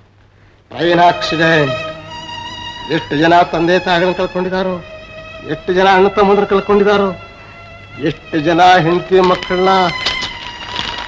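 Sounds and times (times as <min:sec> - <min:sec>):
man speaking: 0:00.7 - 0:02.0, 0:02.8 - 0:07.2, 0:08.0 - 0:10.0.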